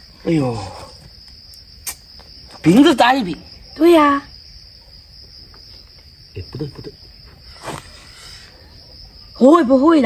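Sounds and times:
high-pitched insect drone: 0.0s - 10.0s.

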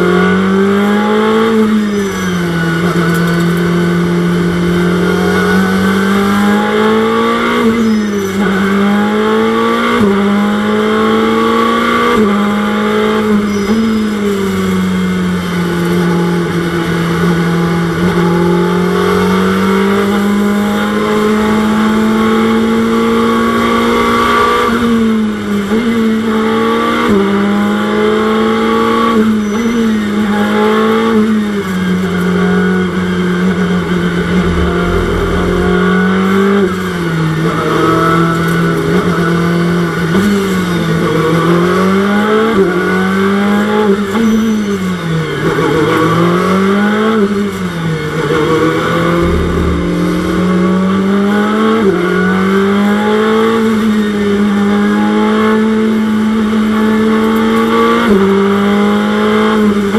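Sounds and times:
road and tyre noise: 0.0s - 9.2s, 31.2s - 37.6s, 47.2s - 59.9s
racing car engine running: 33.6s - 36.9s.

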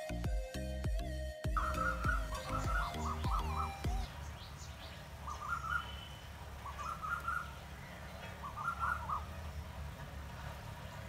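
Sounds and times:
bird calling: 1.6s - 11.0s.

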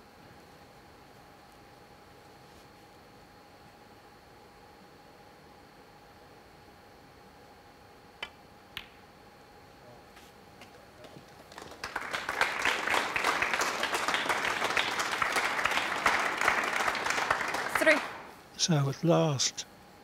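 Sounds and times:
audience applauding: 11.0s - 18.4s.

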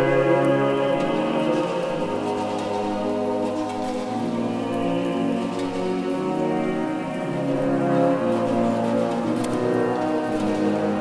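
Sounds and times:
brass and wind instruments: 0.0s - 11.0s
choir singing polyphony: 0.0s - 11.0s.

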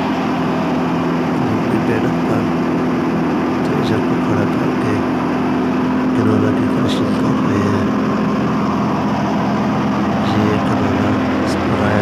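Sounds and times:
thresher running: 0.0s - 12.0s.

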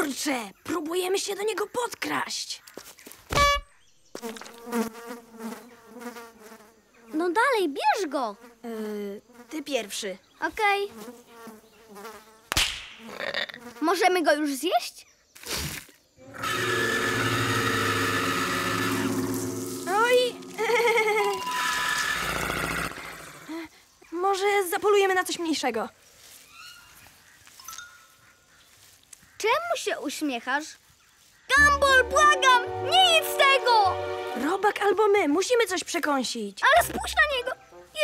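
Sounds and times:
flies buzzing: 3.4s - 14.4s, 16.2s - 23.6s, 31.5s - 38.0s
soft chime-like tones: 27.6s - 28.2s.

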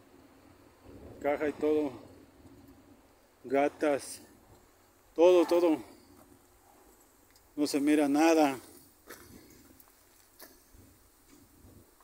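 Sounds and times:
faint clicks: 7.0s - 7.5s.

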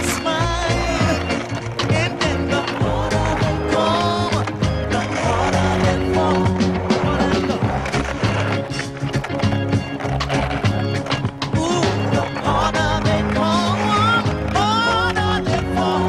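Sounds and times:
music with steady bass line: 0.0s - 16.0s
skateboard clacking on ledge: 0.0s - 16.0s
skateboard wheels rolling on concrete: 0.0s - 16.0s.

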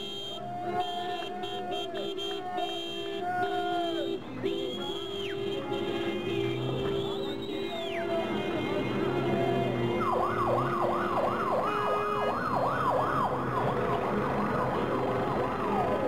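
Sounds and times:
street traffic noise: 0.0s - 16.0s
electronic siren yelping: 9.4s - 13.9s.

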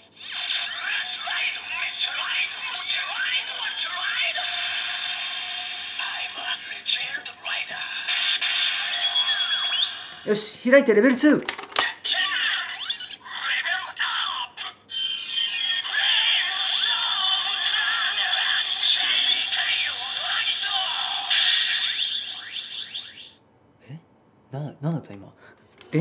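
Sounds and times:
tinny toy voice calls: 0.0s - 10.3s, 11.8s - 23.4s
tinny electronic toy music: 8.3s - 10.3s, 15.0s - 23.4s.

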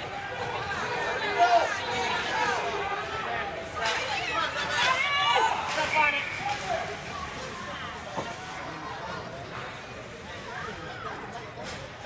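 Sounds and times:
crowd shouting and calling: 0.0s - 9.2s.

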